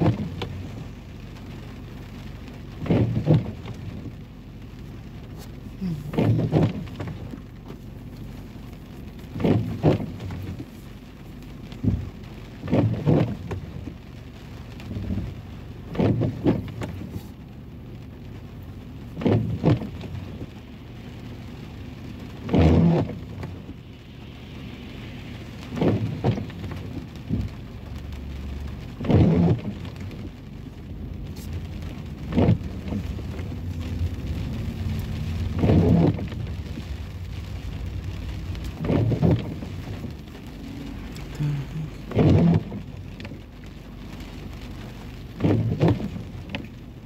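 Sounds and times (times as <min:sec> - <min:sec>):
rain on car windshield and roof: 0:00.0 - 0:47.0
windshield wipers sweeping: 0:00.0 - 0:47.0.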